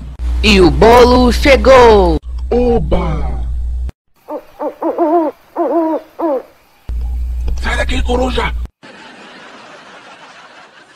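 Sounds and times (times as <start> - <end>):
owl hooting: 4.2 - 6.6.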